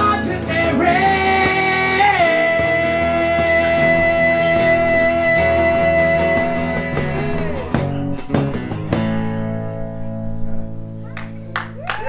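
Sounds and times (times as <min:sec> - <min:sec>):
acoustic blues band playing: 0:00.0 - 0:11.9.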